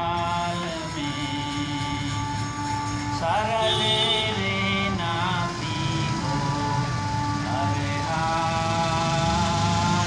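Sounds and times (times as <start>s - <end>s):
harmonium chord: 0.0s - 10.0s
person singing devotional song: 0.0s - 10.0s.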